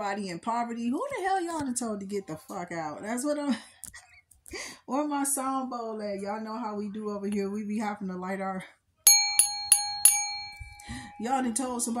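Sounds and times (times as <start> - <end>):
singing bowl ringing: 9.1 - 12.0.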